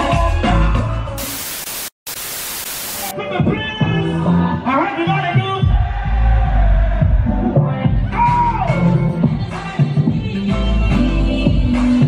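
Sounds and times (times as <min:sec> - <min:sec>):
tv static hiss: 0:01.2 - 0:03.1.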